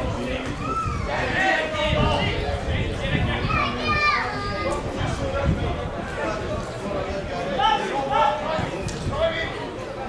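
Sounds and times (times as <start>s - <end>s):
people shouting and calling out: 0.0s - 6.6s.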